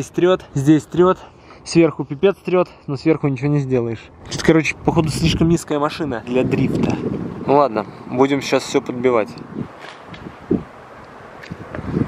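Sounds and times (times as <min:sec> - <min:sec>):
wind buffeting microphone: 0:04.0 - 0:12.0.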